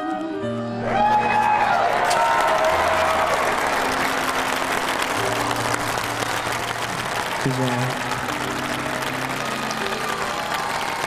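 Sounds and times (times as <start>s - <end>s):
audience applauding: 0.8s - 11.0s.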